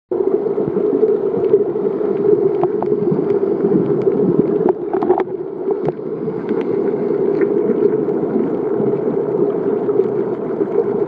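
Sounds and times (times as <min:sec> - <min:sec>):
muffled underwater rush: 0:00.1 - 0:11.0
faint ticks: 0:01.4 - 0:07.6.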